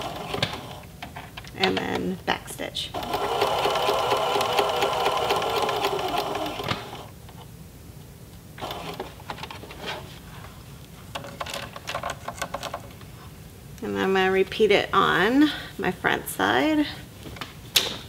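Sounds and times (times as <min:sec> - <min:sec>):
sewing machine stitching: 0:00.0 - 0:00.8, 0:03.0 - 0:07.1, 0:08.6 - 0:09.1.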